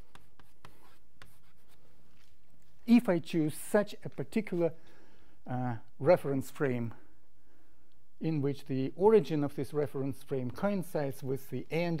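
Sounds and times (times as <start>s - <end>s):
chalk scratching on blackboard: 0.0s - 1.9s.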